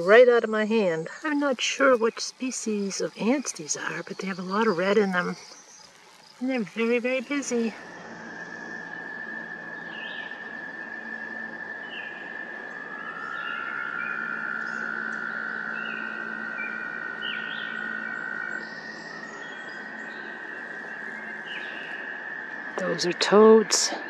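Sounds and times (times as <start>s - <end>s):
bird chirps: 0.0s - 23.2s
toads trilling: 0.0s - 24.0s.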